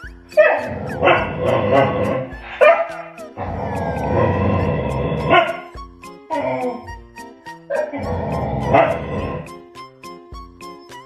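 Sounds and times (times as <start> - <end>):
dog yip: 0.0 - 1.3, 2.3 - 3.3, 7.7 - 8.0
background music: 0.0 - 11.0
dog vocalizing: 0.4 - 5.7, 7.7 - 9.5.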